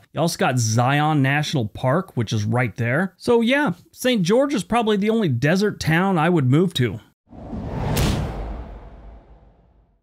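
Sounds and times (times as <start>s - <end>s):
whoosh with low rumble: 7.3s - 10.0s.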